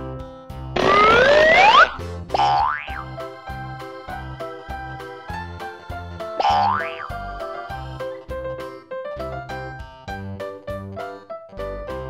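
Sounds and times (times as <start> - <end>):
upbeat children's music: 0.0 - 12.0
rising cartoon sound effect: 0.8 - 2.7, 6.4 - 7.3.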